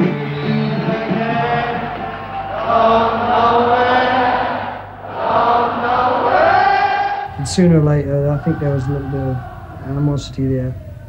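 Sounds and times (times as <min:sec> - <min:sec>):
group of voices chanting: 0:00.7 - 0:11.0.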